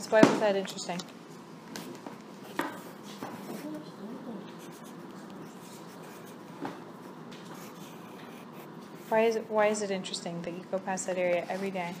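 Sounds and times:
pencils scratching on paper: 0:02.7 - 0:09.8, 0:11.1 - 0:12.0.

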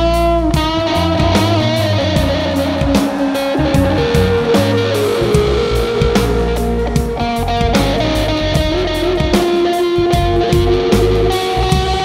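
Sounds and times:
electric guitar: 0:00.0 - 0:12.0
rock band playing live: 0:00.0 - 0:12.0.

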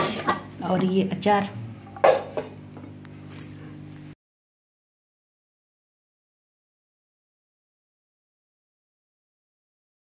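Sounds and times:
metal lid clanking on pot: 0:02.0 - 0:02.5.

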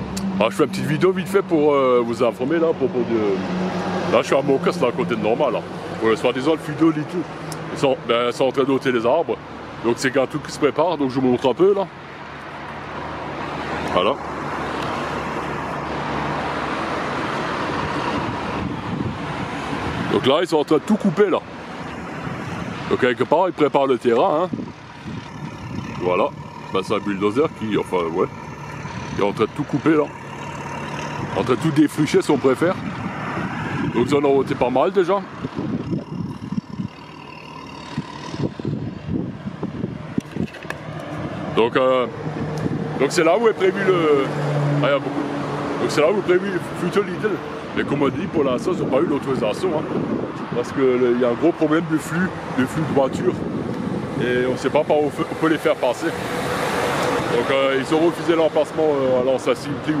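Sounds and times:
engine rumbling unevenly: 0:00.0 - 0:45.2
road traffic: 0:00.0 - 1:00.0.

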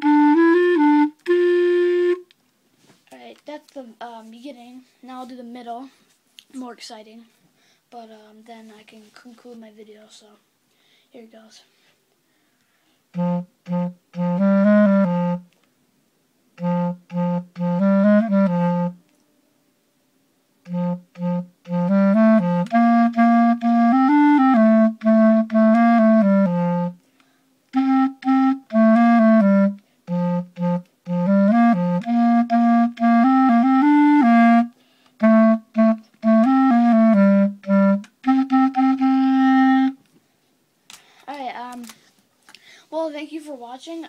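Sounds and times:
solo clarinet melody: 0:00.0 - 0:02.4, 0:13.1 - 0:15.6, 0:16.5 - 0:19.2, 0:20.6 - 0:40.0.

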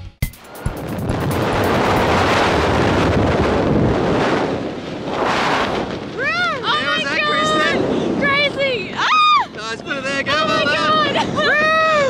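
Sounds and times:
wind buffeting microphone: 0:00.4 - 0:12.0.

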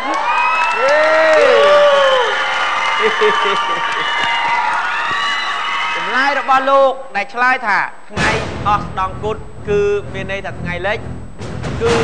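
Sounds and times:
audience cheering and clapping: 0:00.0 - 0:06.8.

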